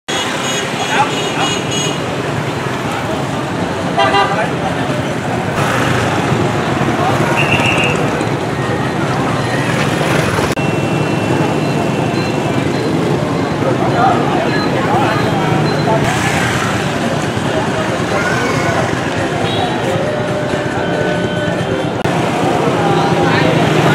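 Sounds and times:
crowd chatter: 0.1s - 23.9s
passing motorbike and car traffic: 0.1s - 23.9s.

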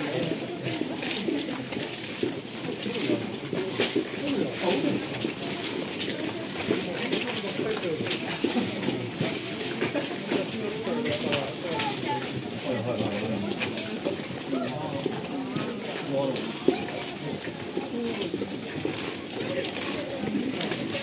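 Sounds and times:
people chattering: 0.0s - 21.0s.

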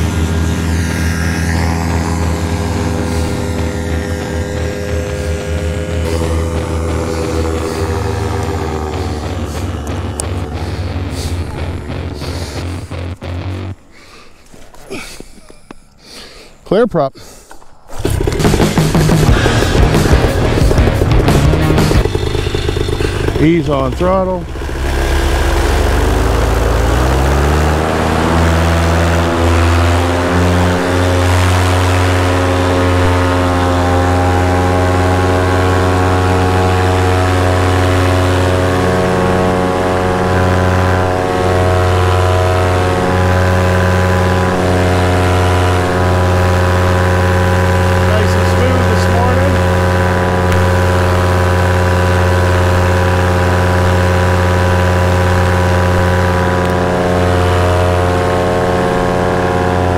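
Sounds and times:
paramotor engine at full throttle: 0.0s - 14.2s, 17.5s - 59.9s.

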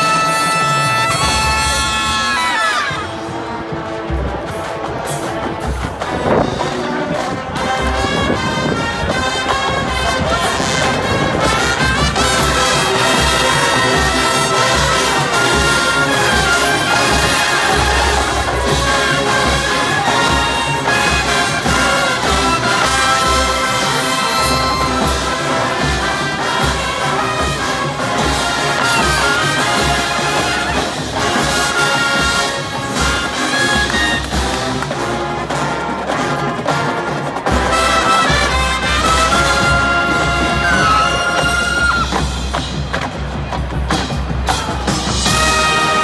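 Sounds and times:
drums and percussion: 0.0s - 46.0s
marching band brass chords: 0.0s - 46.0s.

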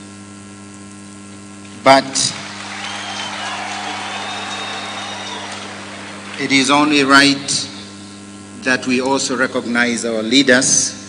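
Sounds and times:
electrical hum: 0.0s - 11.0s
large crowd noise: 2.0s - 7.9s.

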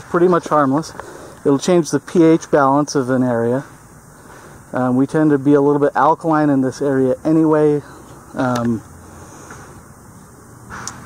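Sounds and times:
short breath: 1.0s - 1.4s, 9.0s - 9.8s
small click: 10.8s - 11.0s.

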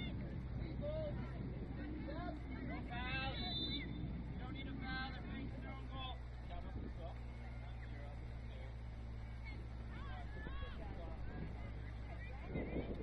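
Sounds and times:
distant shouts of players: 0.0s - 6.4s
steady low rumble: 0.0s - 13.0s.

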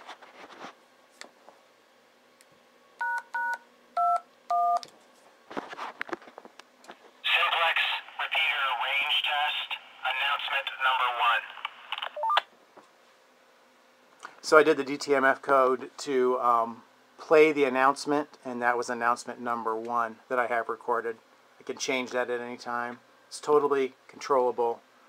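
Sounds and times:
voice announcement over radio: 7.3s - 11.7s.

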